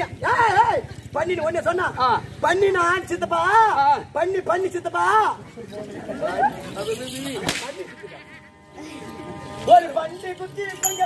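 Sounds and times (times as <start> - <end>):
sharp crack: 7.4 - 7.8.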